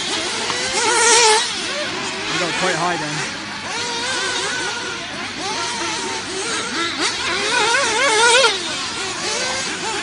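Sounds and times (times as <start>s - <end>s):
rc car motors whining: 0.0s - 10.0s.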